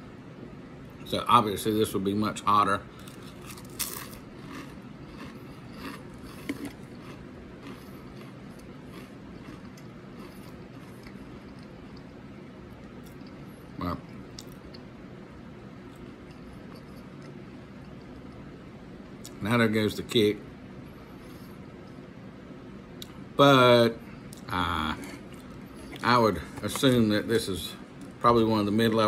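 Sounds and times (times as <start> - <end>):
man chewing crisps: 2.9 - 14.9, 24.2 - 28.2.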